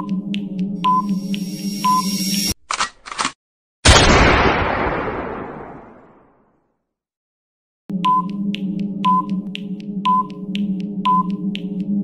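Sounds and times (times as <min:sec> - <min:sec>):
electronic drone with ticks: 0:00.0 - 0:02.6, 0:07.9 - 0:12.0
timer beeps: 0:00.8 - 0:02.5, 0:08.0 - 0:08.4, 0:09.0 - 0:09.4, 0:10.0 - 0:10.4, 0:11.0 - 0:11.4.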